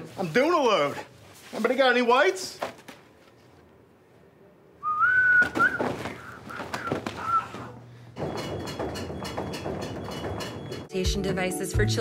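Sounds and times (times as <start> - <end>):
person whistling: 4.8 - 7.8.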